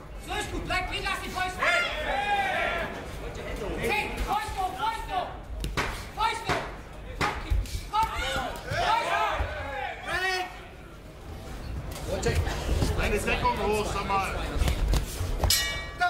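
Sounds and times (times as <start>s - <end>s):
men shouting: 1.6s - 3.0s, 7.9s - 10.6s.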